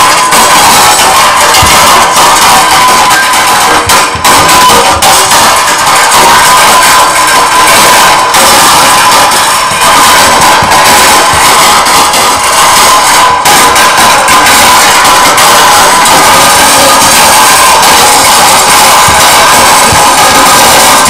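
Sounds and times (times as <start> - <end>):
distorted noise wall: 0.0 - 21.0.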